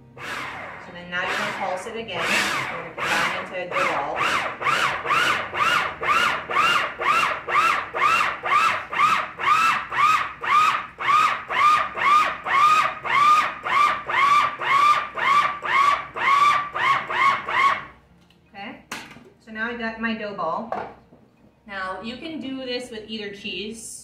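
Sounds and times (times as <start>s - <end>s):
food processor pulsing: 0.0s - 17.9s.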